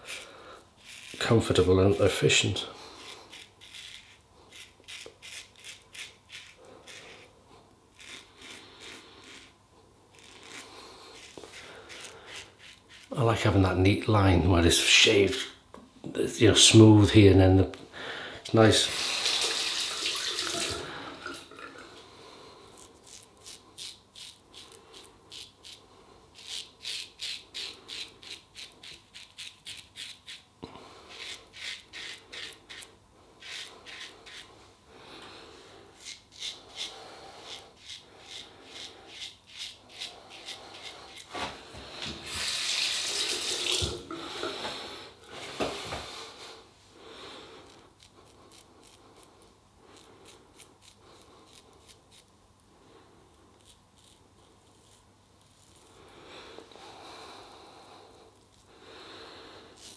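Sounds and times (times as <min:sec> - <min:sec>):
razor scraping stubble: 0:00.0 - 0:15.6, 0:22.6 - 0:34.7, 0:35.8 - 0:46.0, 0:47.5 - 0:52.3, 0:53.3 - 0:57.0, 0:57.7 - 0:58.8, 0:59.6 - 0:59.9.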